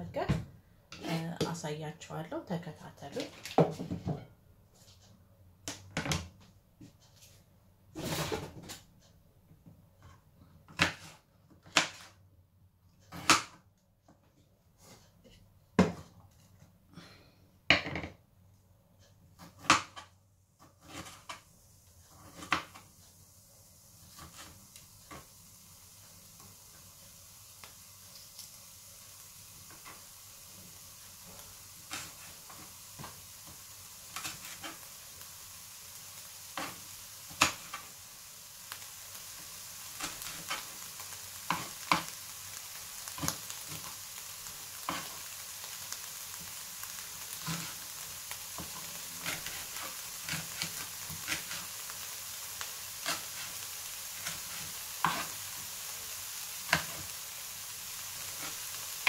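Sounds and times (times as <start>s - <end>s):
onion sizzling in a frying pan: 0.9s - 4.3s, 7.9s - 8.8s, 10.7s - 12.2s, 19.3s - 59.0s
sharp pops and crackles: 27.5s - 28.6s, 36.5s - 38.0s, 38.7s - 52.0s.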